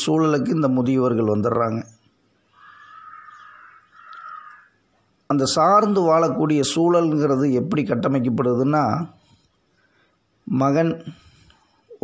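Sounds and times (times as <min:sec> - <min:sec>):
harsh drawn-out animal calls: 0:02.5 - 0:04.8.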